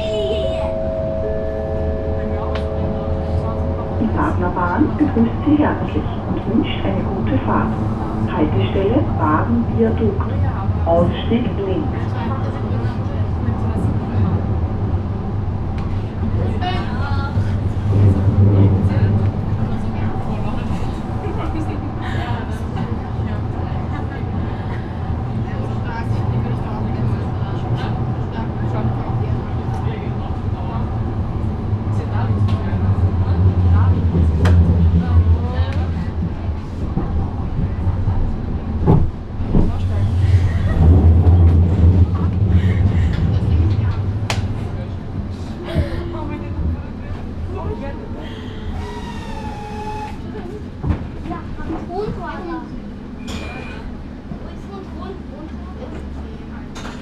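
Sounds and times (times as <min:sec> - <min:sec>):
tram motors and wheels rumbling: 0:00.0 - 0:57.0.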